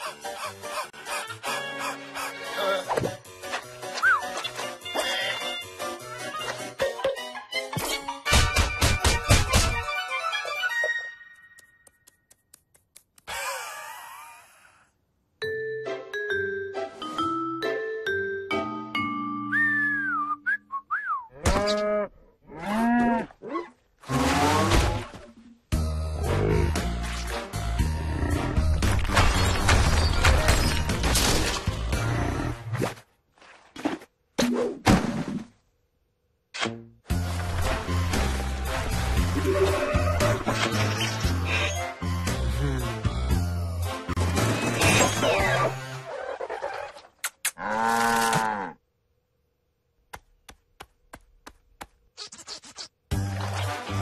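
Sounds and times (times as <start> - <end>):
cartoon background music: 0.0 - 11.9, 15.4 - 20.5, 36.6 - 47.0, 53.1 - 54.0.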